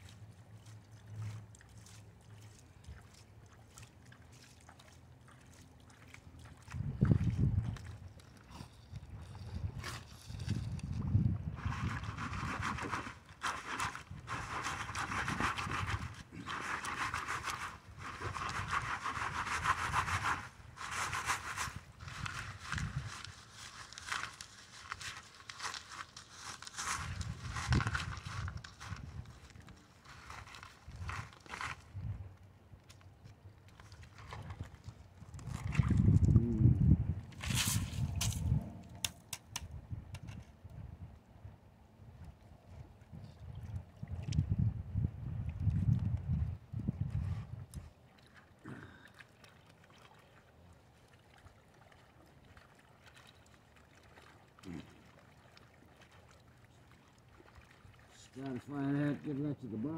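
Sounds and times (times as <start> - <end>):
gravel sloshing in a pan under water: 0.0 - 36.5, 37.2 - 39.6.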